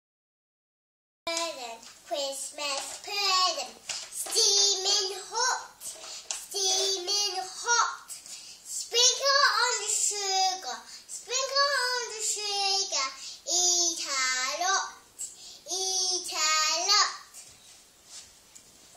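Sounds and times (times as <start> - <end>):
girl singing: 1.3 - 17.5.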